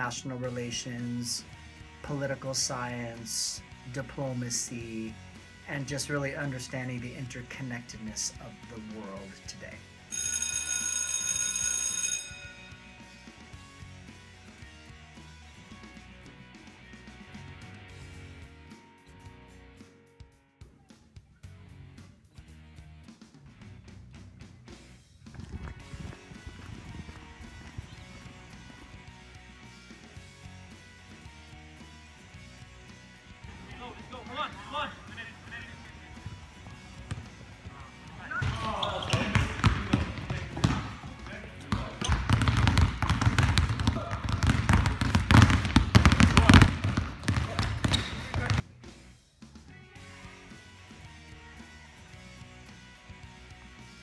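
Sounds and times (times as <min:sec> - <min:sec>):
background music: 0:00.0 - 0:54.0
electric bell ringing: 0:10.1 - 0:13.3.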